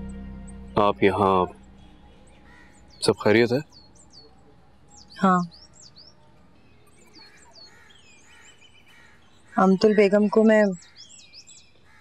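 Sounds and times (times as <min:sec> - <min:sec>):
soft bird chirping: 0:00.0 - 0:12.0.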